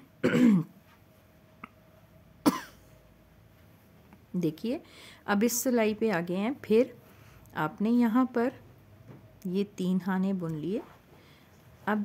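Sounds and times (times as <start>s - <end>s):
woman clearing throat: 0.2s - 0.7s, 2.5s - 2.8s
woman coughing: 0.2s - 0.7s, 2.4s - 2.8s.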